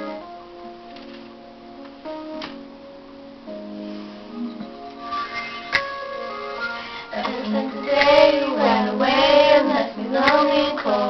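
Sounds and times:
pop backing music: 0.0 - 11.0
girls singing: 7.1 - 11.0.

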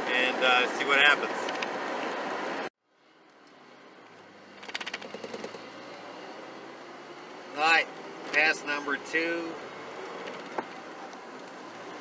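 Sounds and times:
car engine idling and pulling away: 0.0 - 12.0.

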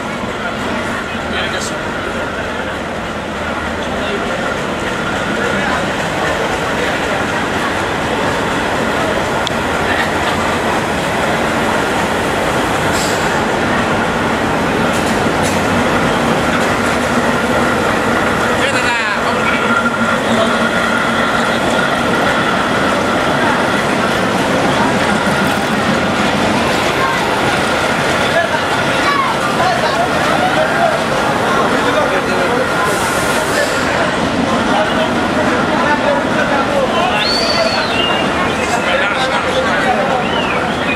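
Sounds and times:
diesel locomotive engine running: 0.0 - 40.9
train wheels rumbling on rails: 0.0 - 40.9.

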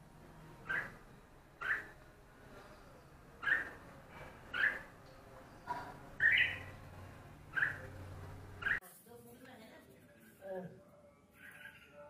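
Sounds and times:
bulbul calling: 0.6 - 1.0, 1.6 - 2.0, 3.4 - 3.8, 4.5 - 4.9, 5.6 - 6.8, 7.5 - 8.0.

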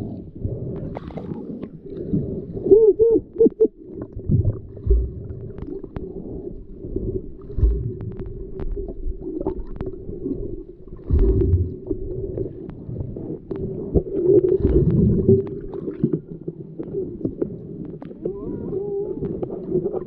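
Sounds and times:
water moving around camera: 0.0 - 20.0.

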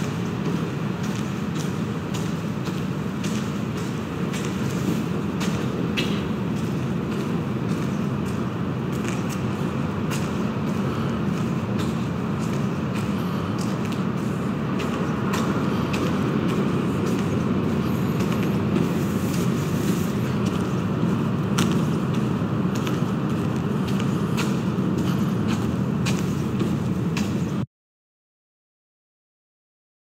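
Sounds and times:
footsteps clicking on concrete: 0.0 - 27.7.

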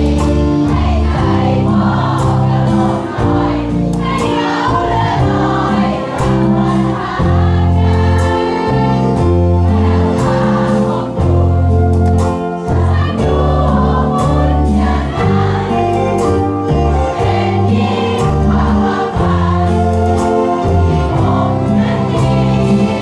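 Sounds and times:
crowd singing together: 0.0 - 23.0
live band playing pop ballad: 0.0 - 23.0.

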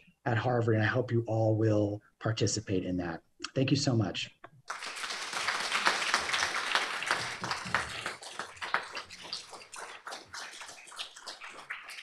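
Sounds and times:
audience applauding: 4.7 - 12.0.

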